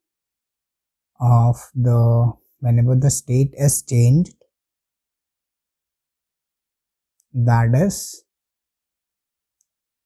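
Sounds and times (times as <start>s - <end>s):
man speaking: 1.2s - 4.4s, 7.4s - 8.3s.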